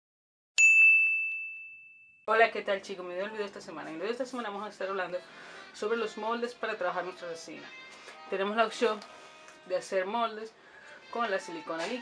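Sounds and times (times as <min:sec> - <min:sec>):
bright ding ringing: 0:00.6 - 0:02.3.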